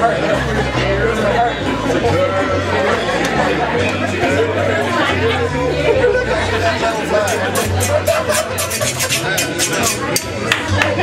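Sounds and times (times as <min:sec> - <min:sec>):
people chattering and laughing: 0:00.0 - 0:11.0.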